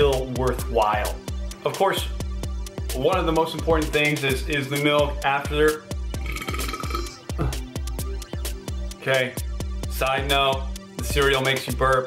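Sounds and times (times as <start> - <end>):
electronic beat music: 0.0 - 12.0
man burping: 6.2 - 7.8.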